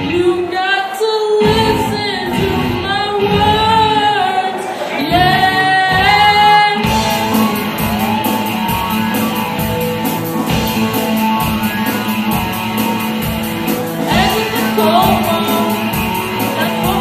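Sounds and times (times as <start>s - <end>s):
lead singer singing: 0.0s - 8.9s, 13.7s - 17.0s
electric guitar: 0.0s - 17.0s
live rock band: 0.0s - 17.0s.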